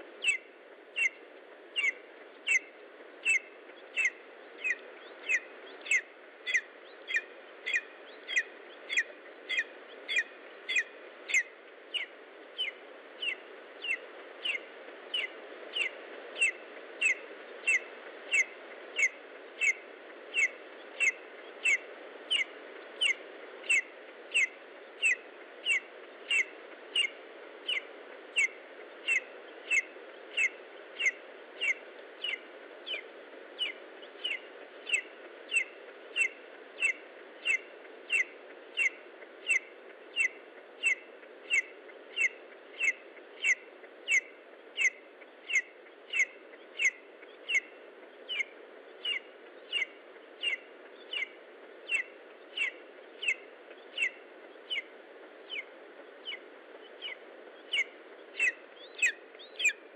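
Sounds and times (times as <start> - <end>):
steady low hiss: 0.0 - 59.9
eagle chick calling: 0.2 - 1.2, 1.8 - 19.8, 20.4 - 54.9, 55.5 - 59.8.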